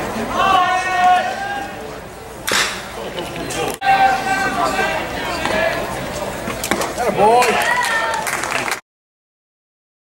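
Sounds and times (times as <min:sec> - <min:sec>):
metal bat hitting ball: 0:02.5 - 0:02.8.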